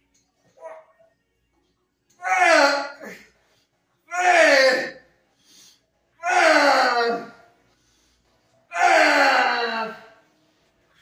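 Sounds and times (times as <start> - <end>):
man groaning: 6.2 - 7.4, 8.8 - 10.1.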